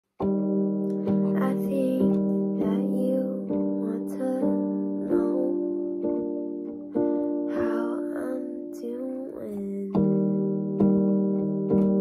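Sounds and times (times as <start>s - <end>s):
person singing: 1.0s - 6.2s, 6.9s - 10.2s.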